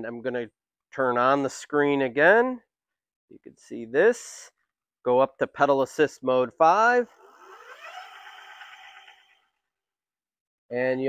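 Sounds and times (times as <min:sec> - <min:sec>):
electric motor whine: 0:07.2 - 0:09.4.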